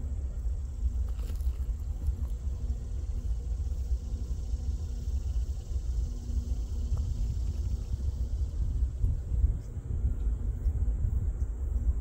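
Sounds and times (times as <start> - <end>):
distant diesel locomotive rumble: 0.0 - 12.0
faint hum: 0.0 - 12.0.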